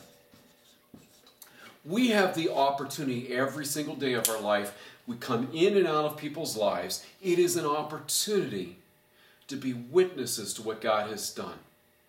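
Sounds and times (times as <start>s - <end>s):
man talking: 1.8s - 8.8s, 9.5s - 11.6s.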